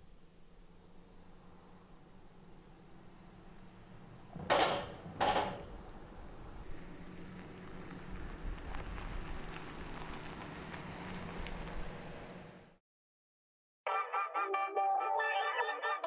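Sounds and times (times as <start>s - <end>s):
truck engine rumble: 0.1s - 12.8s
tyres crunching on gravel: 5.7s - 12.4s.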